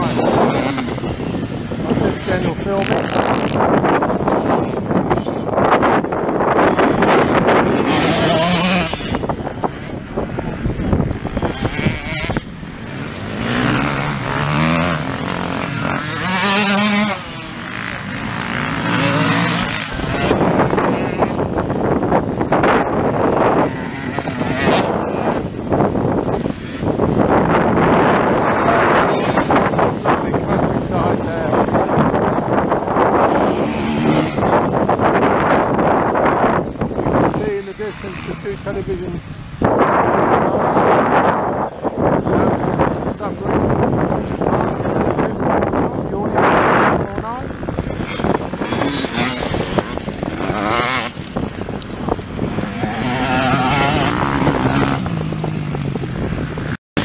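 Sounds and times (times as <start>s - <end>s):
motorcycle engines revving: 0.0s - 57.0s
wind noise on microphone: 0.0s - 57.0s.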